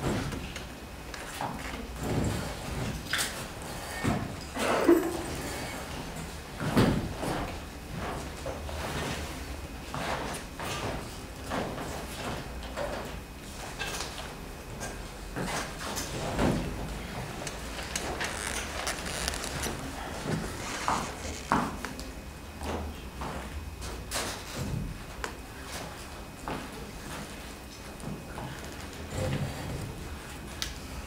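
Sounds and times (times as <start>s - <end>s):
chair taken at piano: 15.4s - 22.0s
footsteps on wooden floor: 17.3s - 22.0s.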